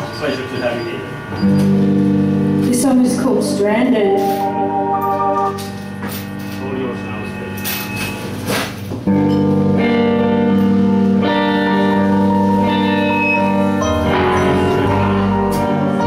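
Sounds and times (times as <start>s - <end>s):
held guitar and keyboard notes: 1.2s - 16.0s
band playing long held chords: 1.6s - 16.0s.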